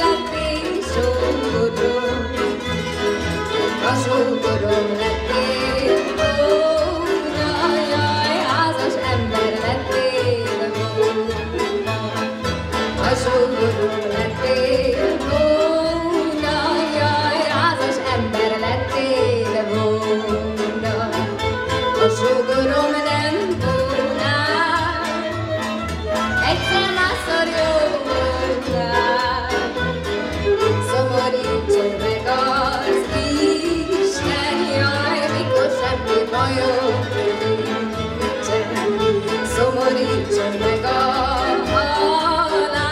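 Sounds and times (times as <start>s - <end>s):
woman singing with vibrato: 0.0s - 2.8s, 3.6s - 25.4s, 26.4s - 42.9s
folk band playing: 0.0s - 42.9s.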